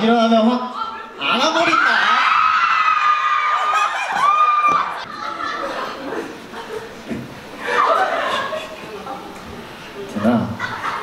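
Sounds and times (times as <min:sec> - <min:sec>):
fans screaming: 0:01.4 - 0:05.0.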